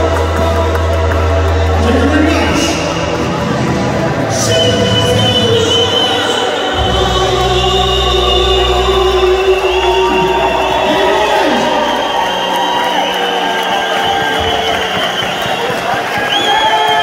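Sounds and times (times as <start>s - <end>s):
amplified backing music: 0.0s - 17.0s
crowd singing along: 2.5s - 12.4s
man singing through pa: 4.2s - 11.8s.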